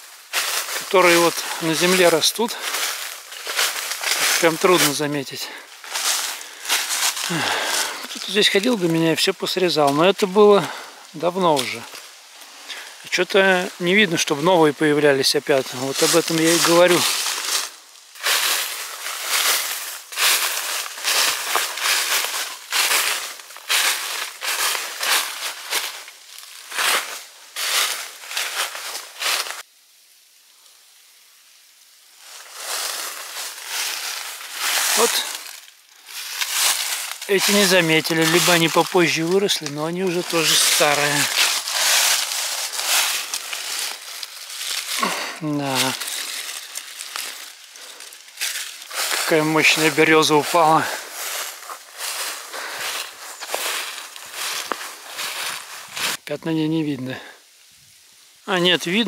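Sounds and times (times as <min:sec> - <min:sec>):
footsteps crunching dry leaves: 0:00.0 - 0:29.7, 0:31.6 - 0:57.3.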